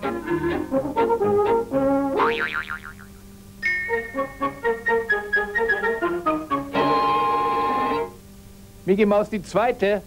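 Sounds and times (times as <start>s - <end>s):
music: 0.0s - 2.3s, 3.5s - 8.3s
cartoon boing: 2.2s - 3.2s.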